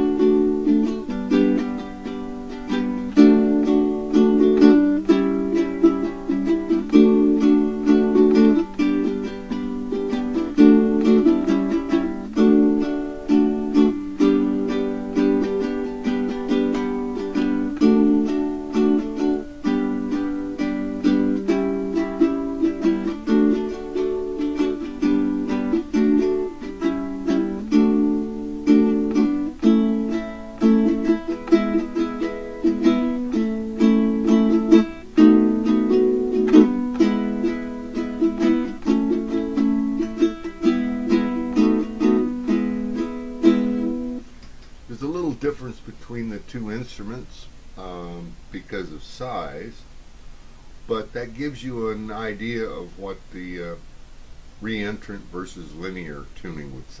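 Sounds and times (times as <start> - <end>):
ukulele strumming chords: 0.0 - 49.7, 50.8 - 53.9, 54.6 - 57.0.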